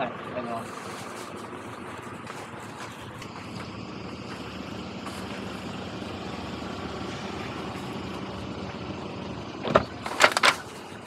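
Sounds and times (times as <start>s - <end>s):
outdoor street noise: 0.0s - 11.0s
car door clunks and clicks: 9.6s - 10.6s.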